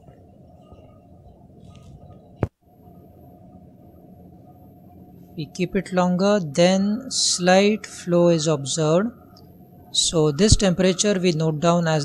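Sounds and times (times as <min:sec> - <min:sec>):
faint high whine: 0:00.0 - 0:12.0
low room background noise: 0:00.0 - 0:12.0.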